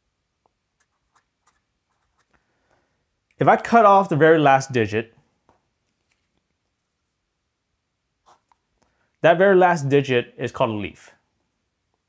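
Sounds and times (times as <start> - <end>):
pen scratching on paper: 8.2 - 8.6.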